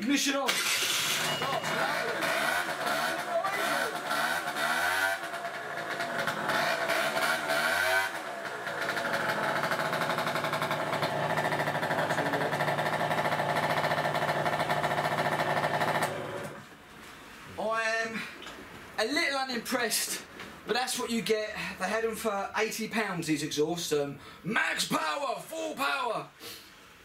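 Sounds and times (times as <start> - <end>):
moped engine revving: 0.5 - 16.6.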